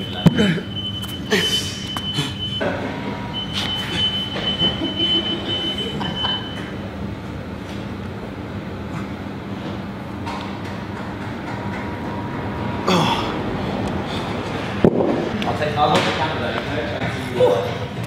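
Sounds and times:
mechanical hum: 0.0 - 18.0.

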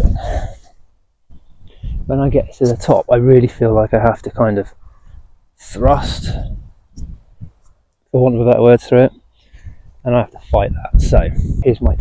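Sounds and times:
man breathing out: 0.0 - 0.8
man speaking: 2.0 - 4.8, 5.6 - 6.6, 8.1 - 9.2, 10.0 - 12.0.

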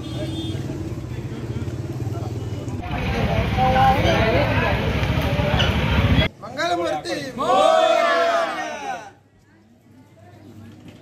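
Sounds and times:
motorcycle engine running: 0.9 - 6.3.

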